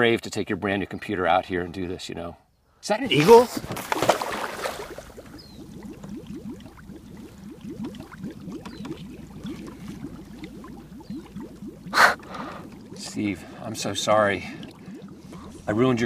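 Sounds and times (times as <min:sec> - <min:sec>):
splash-like rush: 0:03.2 - 0:05.1
water gurgling and bubbling: 0:03.2 - 0:16.0.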